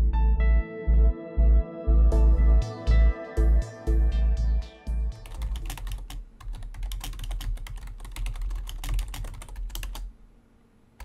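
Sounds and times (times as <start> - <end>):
fast typing on keyboard: 5.2 - 10.1.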